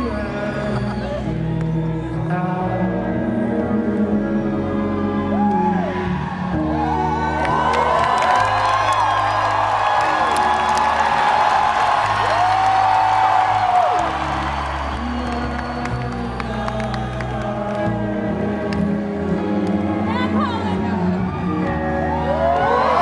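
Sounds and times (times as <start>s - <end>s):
man singing: 0.0s - 6.0s, 14.0s - 23.0s
crowd whooping and cheering: 5.0s - 18.5s, 19.8s - 23.0s.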